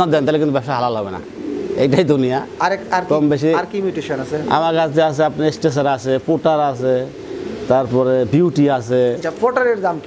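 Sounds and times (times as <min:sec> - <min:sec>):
pigeons cooing: 0:00.0 - 0:10.0.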